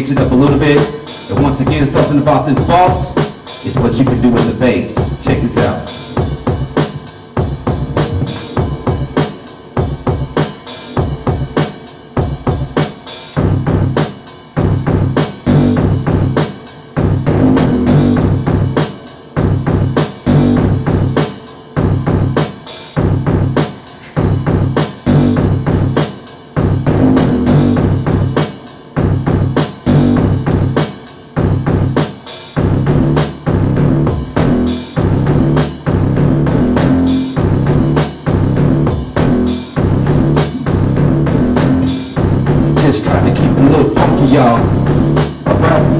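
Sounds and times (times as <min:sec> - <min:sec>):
drum machine looped beat: 0:00.0 - 0:45.9
synth bass line: 0:03.8 - 0:10.4, 0:14.6 - 0:16.4, 0:17.0 - 0:18.8, 0:19.4 - 0:21.2, 0:21.8 - 0:22.4, 0:23.0 - 0:23.6, 0:24.2 - 0:26.0, 0:26.6 - 0:28.4, 0:29.0 - 0:30.8, 0:32.6 - 0:45.9.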